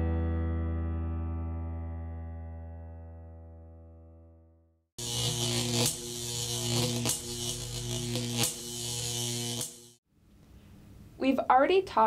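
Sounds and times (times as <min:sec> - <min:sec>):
pulsing electric buzz: 0:05.0 - 0:10.0.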